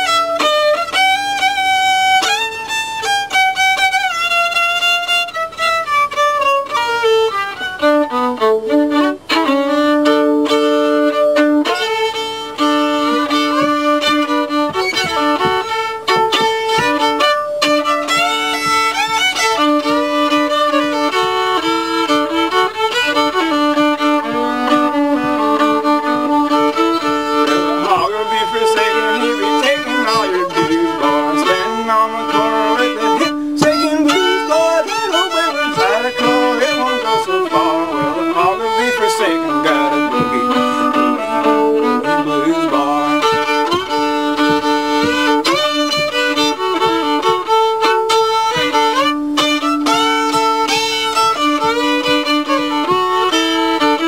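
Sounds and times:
solo fiddle tune: 0:00.0 - 0:54.0.

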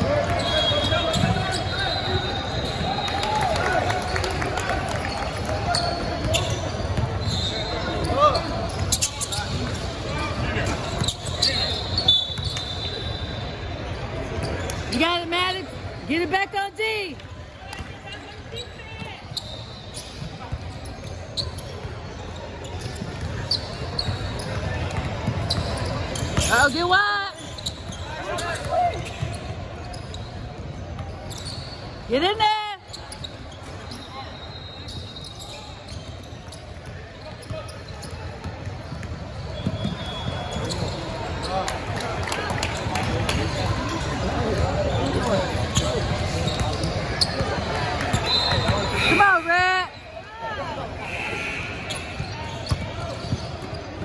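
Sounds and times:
sneaker squeaks: 0:00.0 - 0:04.4, 0:05.0 - 0:16.3, 0:17.7 - 0:54.0
voices and chatter in a hall: 0:00.0 - 0:54.0.

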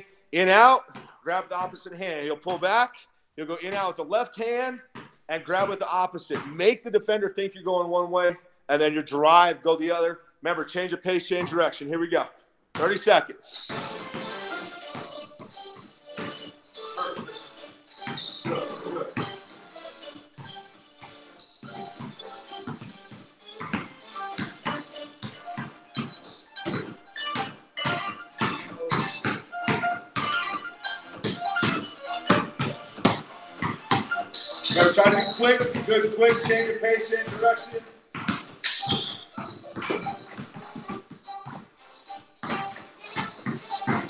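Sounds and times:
background music: 0:00.0 - 0:12.2, 0:12.8 - 0:44.0
basketballs bouncing on concrete: 0:00.4 - 0:02.8, 0:03.6 - 0:04.0, 0:04.9 - 0:06.6, 0:11.4 - 0:11.6, 0:12.7 - 0:44.0.

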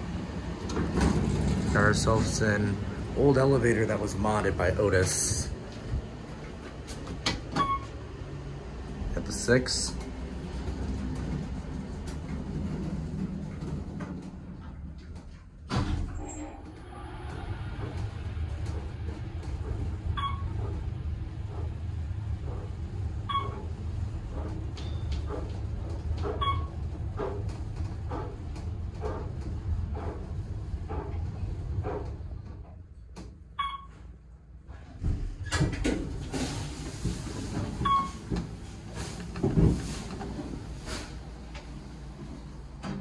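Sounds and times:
elevator doors closing: 0:00.0 - 0:43.0
elevator travelling rumble: 0:00.0 - 0:43.0.

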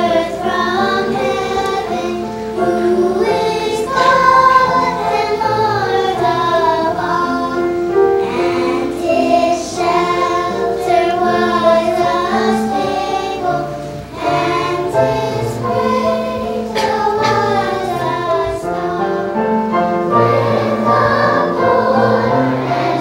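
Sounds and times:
children's choir singing: 0:00.0 - 0:23.0.

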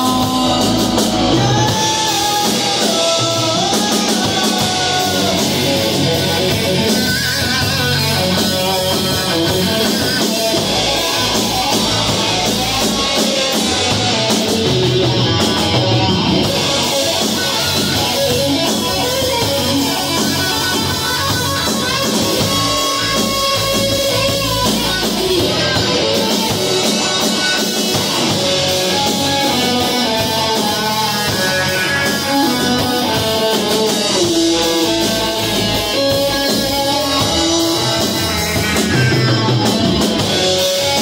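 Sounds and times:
live rock band playing: 0:00.0 - 0:41.0.

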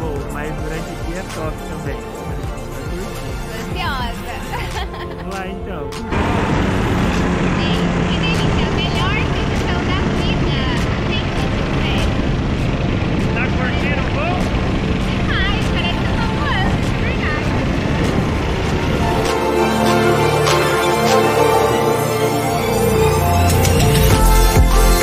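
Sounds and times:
engine and propeller at full power: 0:00.0 - 0:24.6
wind noise on microphone: 0:14.9 - 0:19.4.

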